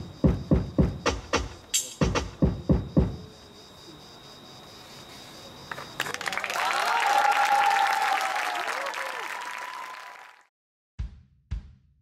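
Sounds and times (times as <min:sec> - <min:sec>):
audience applause: 0:06.0 - 0:10.5
cheering voices: 0:06.1 - 0:10.5.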